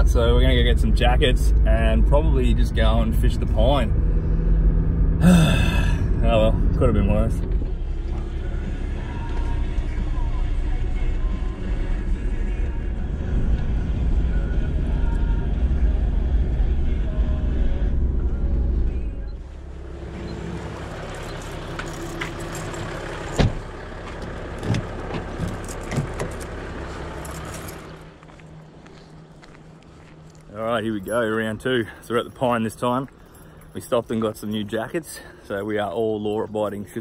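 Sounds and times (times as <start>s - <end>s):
engine and road rumble: 0.0s - 37.0s
engine hum: 0.0s - 37.0s.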